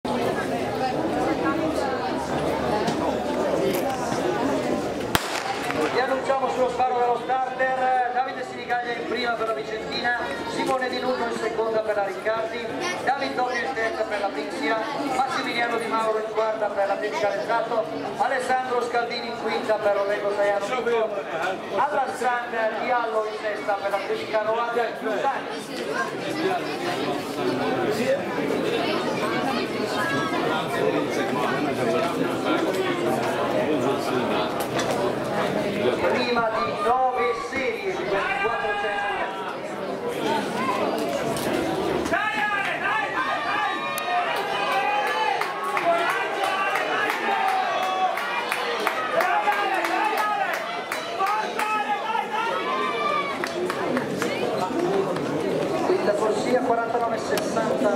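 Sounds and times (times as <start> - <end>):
people chattering: 0.0 - 57.9
people talking: 0.1 - 47.5
starter's pistol crack: 5.2 - 6.0.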